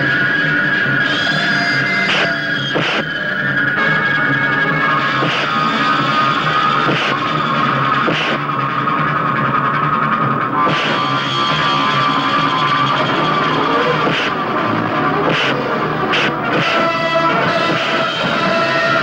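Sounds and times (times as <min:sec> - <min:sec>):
rock music with guitar: 0:00.0 - 0:19.0
punch sound effects: 0:02.1 - 0:03.1, 0:05.2 - 0:05.6, 0:06.9 - 0:07.2, 0:08.1 - 0:08.4, 0:10.7 - 0:11.0, 0:14.0 - 0:14.4, 0:15.2 - 0:16.8.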